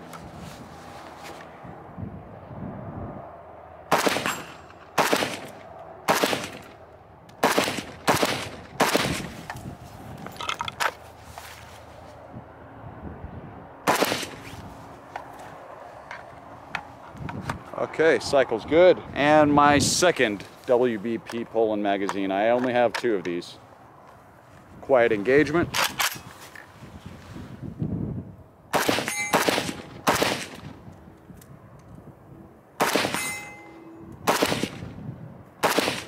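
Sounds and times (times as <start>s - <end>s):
rifle shots with echo: 3.9s - 6.8s, 7.4s - 9.4s, 13.8s - 14.4s, 28.7s - 30.7s, 32.8s - 33.5s, 34.2s - 34.9s, 35.6s - 36.0s.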